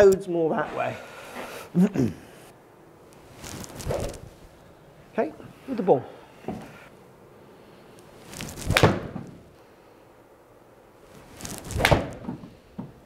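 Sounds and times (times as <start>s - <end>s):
golf club swishing: 3.2s - 4.6s, 8.0s - 9.3s, 11.1s - 12.3s
club striking golf ball: 11.8s - 12.3s.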